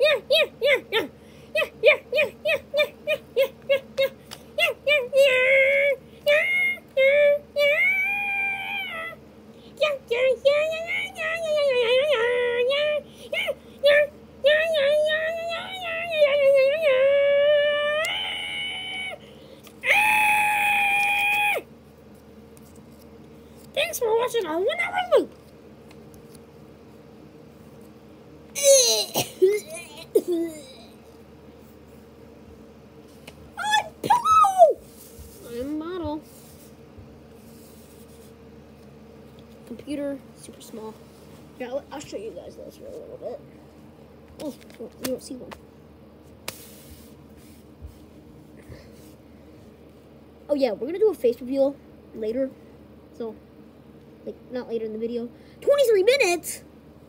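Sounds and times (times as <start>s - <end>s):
high-pitched voice screaming: 13.4s - 19.2s, 19.8s - 21.7s, 33.6s - 34.8s
paper cutouts swept off carpet: 46.4s - 48.0s.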